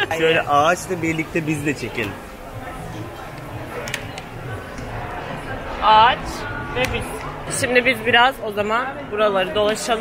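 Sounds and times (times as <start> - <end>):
faint music: 0.0 - 10.0
murmur of shoppers' voices: 0.0 - 10.0.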